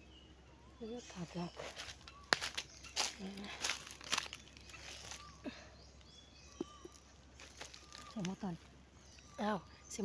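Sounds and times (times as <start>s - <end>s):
faint bird chirps: 0.0s - 10.0s
dry leaves crackling: 1.1s - 5.6s, 6.7s - 10.0s.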